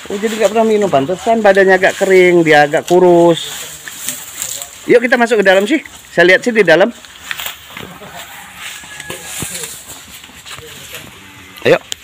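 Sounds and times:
faint indistinct voices: 7.8s - 11.9s.

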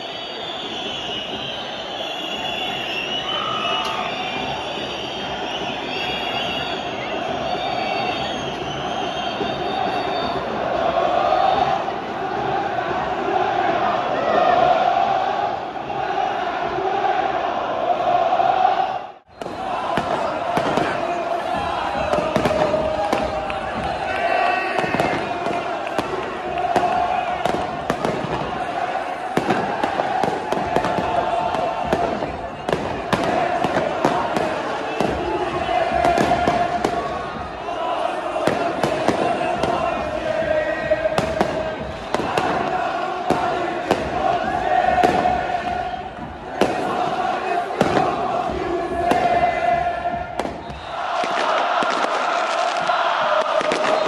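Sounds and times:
crowd chanting and singing: 0.0s - 54.0s
firecrackers banging: 19.3s - 54.0s.

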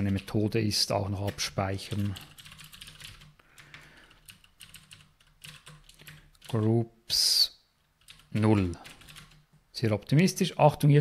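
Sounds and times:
typing on keyboard: 1.2s - 6.6s, 8.0s - 9.4s.

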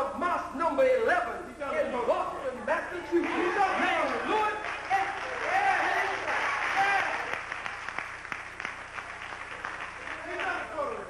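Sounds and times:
audience applauding: 3.1s - 11.0s
hand claps: 4.1s - 11.0s.

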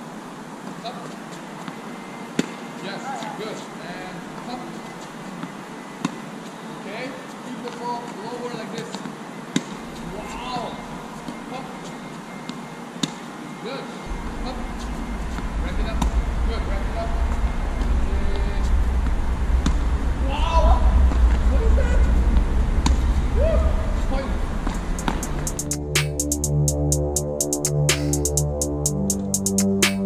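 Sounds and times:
low rumble: 14.1s - 29.1s
tennis racket hitting ball: 24.7s - 25.4s.

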